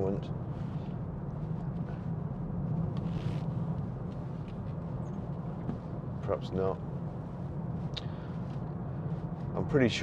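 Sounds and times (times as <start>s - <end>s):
car cabin drone while driving: 0.0s - 10.0s.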